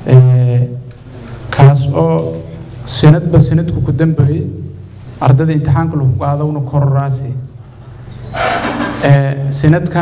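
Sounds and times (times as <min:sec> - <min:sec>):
man speaking into a microphone: 0:00.0 - 0:07.6, 0:08.8 - 0:10.0.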